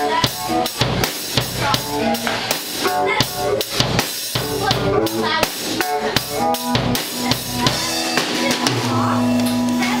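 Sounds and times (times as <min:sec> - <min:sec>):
drum hits: 0:00.0 - 0:10.0.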